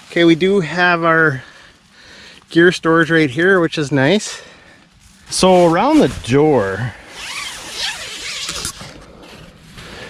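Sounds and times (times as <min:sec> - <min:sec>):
nylon fabric rustling: 0:05.0 - 0:10.0
tent door zipper: 0:05.3 - 0:10.0.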